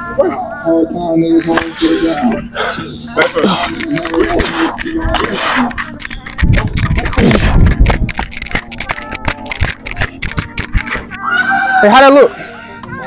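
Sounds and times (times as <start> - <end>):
music: 0.0 - 13.0
person speaking: 3.2 - 11.0.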